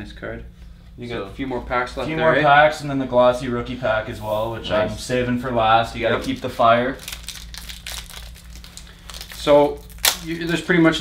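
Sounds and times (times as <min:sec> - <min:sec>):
plastic wrapper crinkling: 0:06.2 - 0:11.0.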